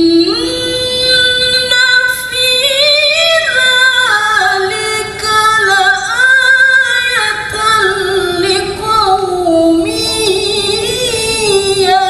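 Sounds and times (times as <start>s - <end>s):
woman reciting melodically: 0.0s - 12.0s.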